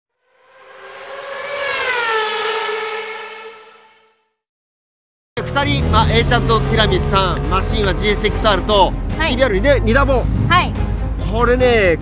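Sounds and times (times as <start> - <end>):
fast engine passing by: 0.1 - 4.3, 5.4 - 11.0.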